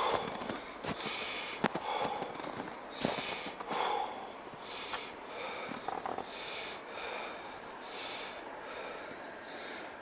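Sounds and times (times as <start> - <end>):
man breathing close to microphone: 0.0 - 10.0.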